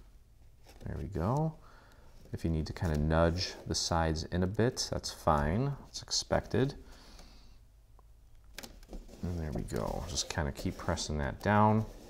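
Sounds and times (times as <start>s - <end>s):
soft paper rustle: 0.4s - 6.8s, 8.8s - 12.0s.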